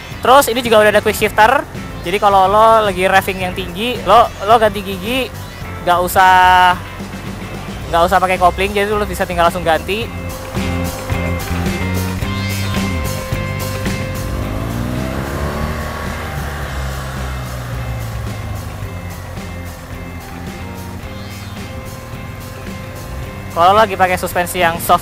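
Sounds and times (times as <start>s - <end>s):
background music: 0.0s - 25.0s
motorcycle engine passing by: 10.2s - 24.9s.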